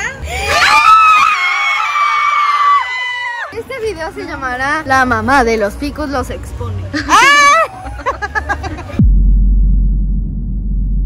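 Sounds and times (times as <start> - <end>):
children screaming: 0.2 - 3.6, 7.1 - 7.9.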